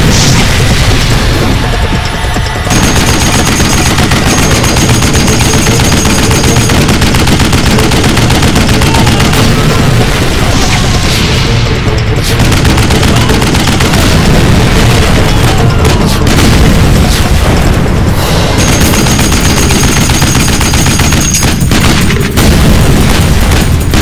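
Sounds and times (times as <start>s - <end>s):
explosion booms: 0.0s - 5.8s, 7.7s - 19.2s, 21.7s - 24.0s
rapid machine-gun fire: 0.0s - 24.0s.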